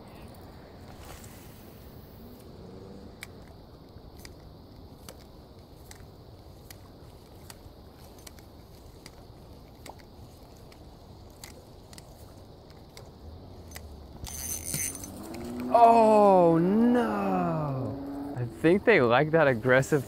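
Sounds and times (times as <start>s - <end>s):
fishing reel clicks: 13.7s - 15.5s.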